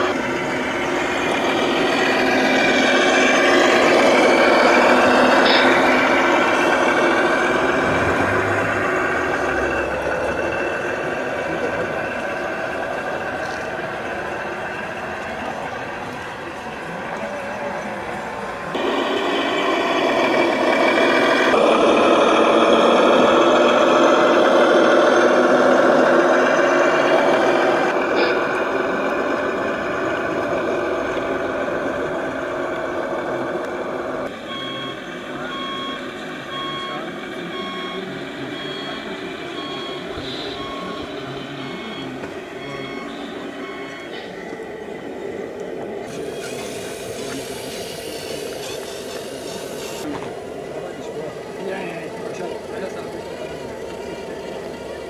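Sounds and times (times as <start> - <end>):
busy mix of noise: 0.0 - 55.0
reversing beeps: 34.4 - 44.7.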